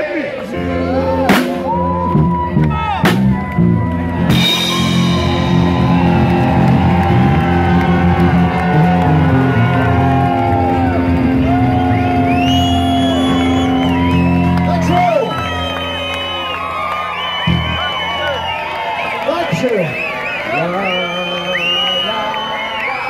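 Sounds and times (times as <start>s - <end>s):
live rock band playing: 0.5s - 19.2s
cymbal crashes: 4.3s - 6.3s.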